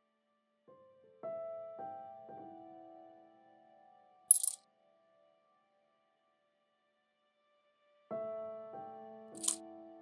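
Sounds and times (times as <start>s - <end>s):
stones clicking together: 4.3s - 4.6s, 9.4s - 9.6s.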